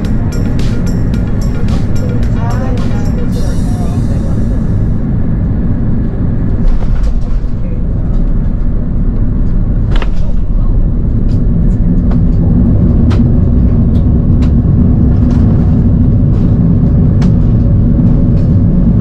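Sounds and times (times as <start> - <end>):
aircraft engines rumbling: 0.0 - 19.0
low hum: 0.0 - 19.0.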